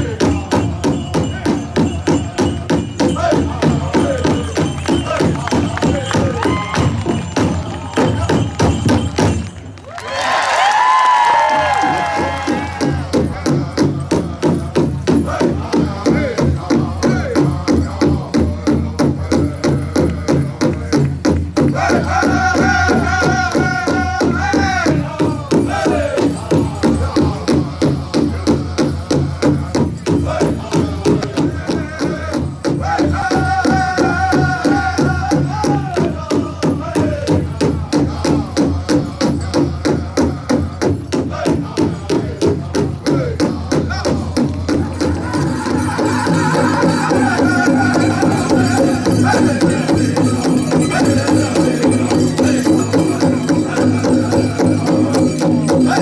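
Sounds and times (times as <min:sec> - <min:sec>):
big drum steady beat: 0:00.0 - 0:09.4, 0:11.8 - 0:56.0
chorus of singers: 0:00.0 - 0:09.4, 0:11.2 - 0:56.0
high voice singing: 0:21.8 - 0:56.0.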